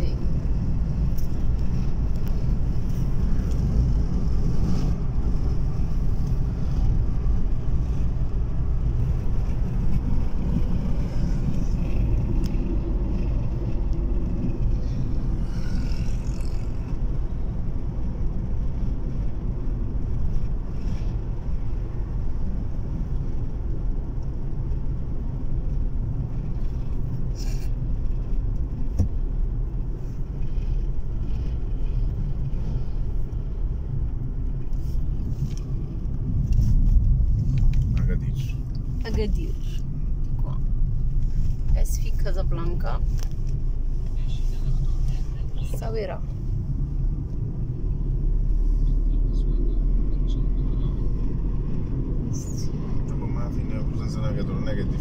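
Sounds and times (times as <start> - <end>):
car cabin rumble: 0.0 - 55.0.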